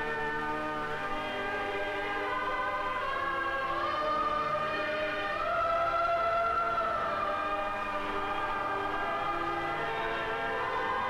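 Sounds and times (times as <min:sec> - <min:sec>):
organ playing slow chords: 0:00.0 - 0:11.0.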